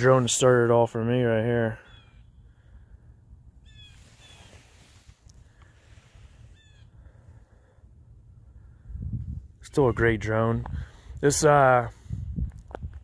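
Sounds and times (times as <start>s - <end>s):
low steady rumble: 0.0s - 9.6s
distant bird calls: 1.5s - 7.8s.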